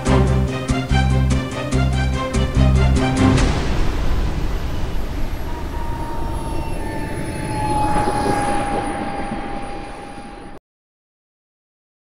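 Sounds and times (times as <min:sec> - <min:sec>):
model jet engine whine: 0:05.2 - 0:10.6.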